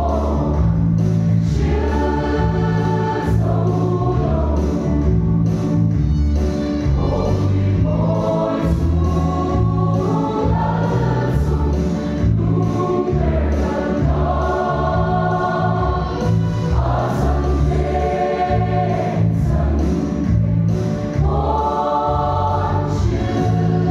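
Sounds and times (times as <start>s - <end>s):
choir singing a hymn: 0.0s - 5.4s, 6.9s - 23.9s.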